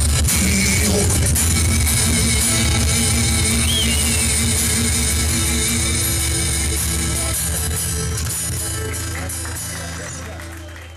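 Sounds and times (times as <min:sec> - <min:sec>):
acoustic guitars strummed: 0:00.0 - 0:09.9.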